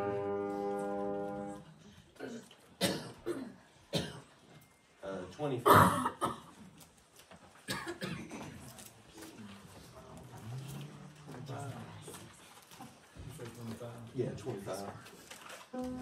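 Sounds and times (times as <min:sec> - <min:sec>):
people coughing: 0:02.2 - 0:04.5, 0:05.6 - 0:06.6, 0:07.6 - 0:08.7.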